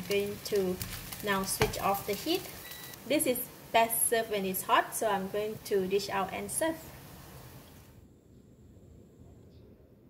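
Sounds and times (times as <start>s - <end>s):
low steady hum and hiss: 0.0s - 10.0s.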